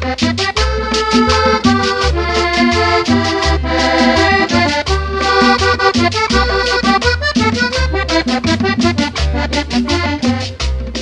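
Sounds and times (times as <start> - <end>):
button accordion melody: 0.0 - 11.0
steady percussion: 0.0 - 11.0
walking bass line: 0.0 - 11.0.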